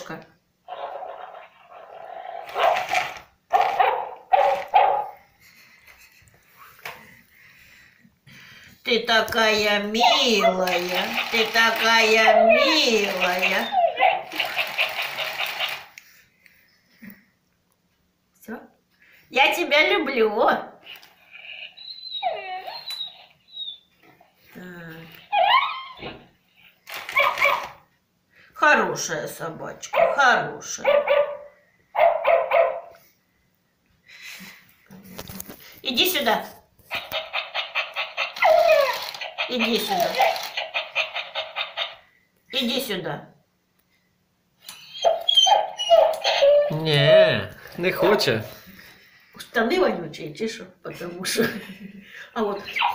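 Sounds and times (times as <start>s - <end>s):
toy motor whirring and clattering: 0.9s - 3.8s, 10.0s - 16.2s, 26.8s - 27.8s, 36.9s - 42.0s.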